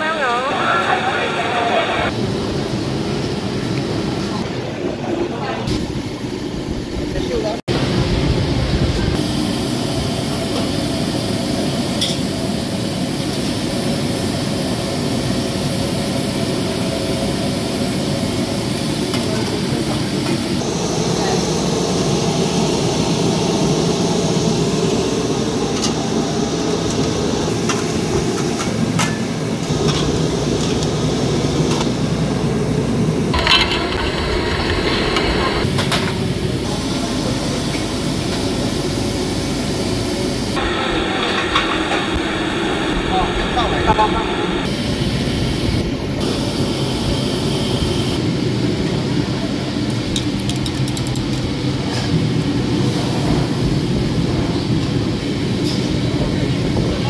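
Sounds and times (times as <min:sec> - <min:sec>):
gas steamers running: 0:00.0 - 0:57.0
extractor hood running: 0:07.8 - 0:57.0.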